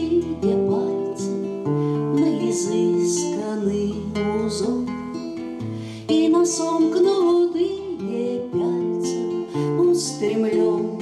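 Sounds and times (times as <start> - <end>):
acoustic guitar picked chords: 0.0 - 11.0.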